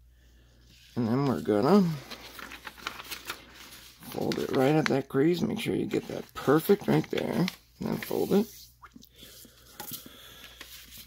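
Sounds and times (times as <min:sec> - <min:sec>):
paper being folded and creased: 0:00.7 - 0:08.7, 0:10.5 - 0:11.0.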